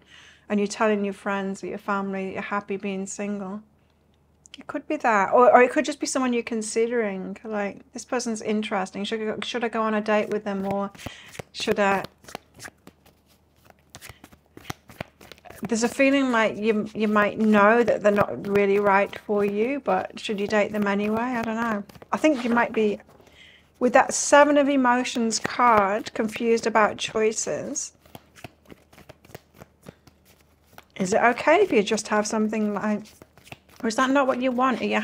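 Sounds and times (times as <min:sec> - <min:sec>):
cards shuffling: 0:10.1 - 0:24.2, 0:25.1 - 0:35.0.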